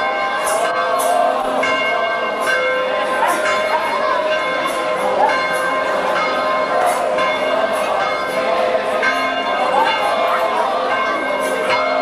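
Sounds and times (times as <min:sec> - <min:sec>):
church bells ringing: 0:00.0 - 0:12.0.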